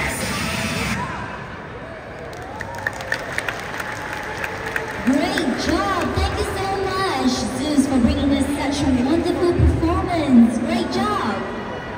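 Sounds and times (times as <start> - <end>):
crowd noise: 0.0 - 11.9
audience applauding: 2.2 - 6.2.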